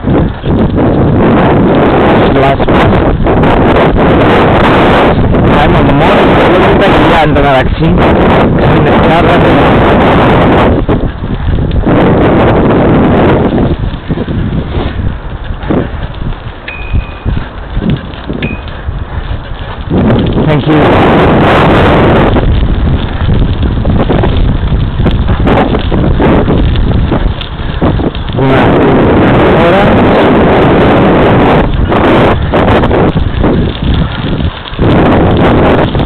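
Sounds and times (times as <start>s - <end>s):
wind buffeting microphone: 0.0s - 36.0s
short high tones: 16.7s - 17.3s, 18.4s - 18.7s.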